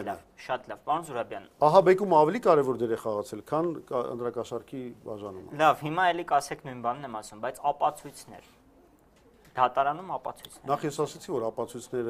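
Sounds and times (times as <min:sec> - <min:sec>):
man speaking: 0:00.0 - 0:08.6, 0:09.6 - 0:12.0.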